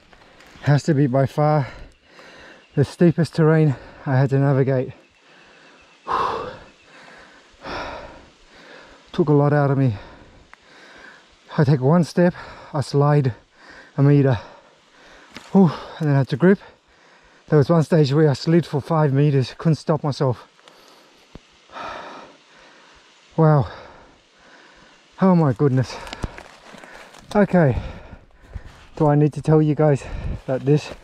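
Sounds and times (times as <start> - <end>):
man breathing out heavily: 1.6 - 2.8, 5.2 - 9.1, 9.9 - 11.4, 12.3 - 16.0, 16.6 - 17.5, 20.7 - 25.2, 25.9 - 29.0, 30.0 - 31.0.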